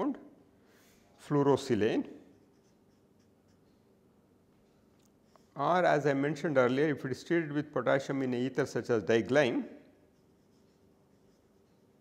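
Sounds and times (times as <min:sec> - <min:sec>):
marker writing on paper: 0:02.3 - 0:03.9, 0:10.1 - 0:12.0.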